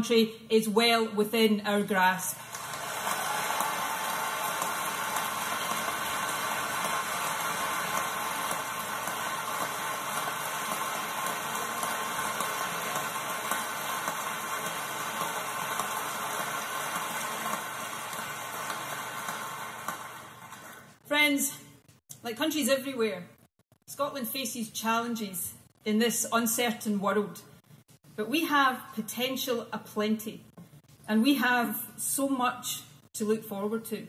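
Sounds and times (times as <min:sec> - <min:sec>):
audience applauding through speaker: 0:02.4 - 0:21.0.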